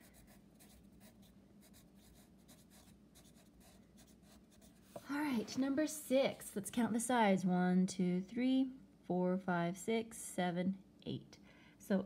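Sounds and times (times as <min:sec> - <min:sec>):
pencil scratching on paper: 0:00.0 - 0:05.2.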